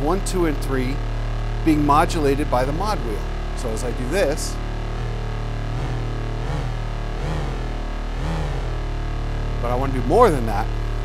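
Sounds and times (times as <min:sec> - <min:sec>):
synthesizer drone sweeping pitch: 0:00.0 - 0:11.0.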